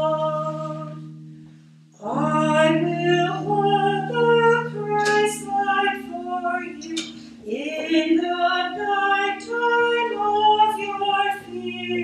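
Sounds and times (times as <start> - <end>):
woman singing a slow hymn: 0.0 - 1.2, 2.0 - 12.0.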